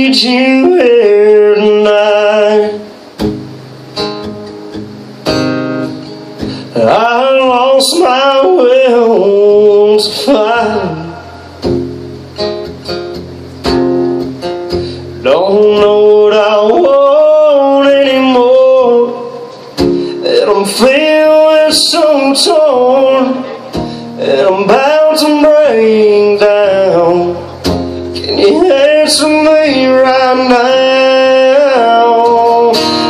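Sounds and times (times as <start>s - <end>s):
man singing: 0.0s - 3.0s, 6.6s - 11.4s, 15.2s - 33.0s
acoustic guitar strumming: 0.0s - 33.0s.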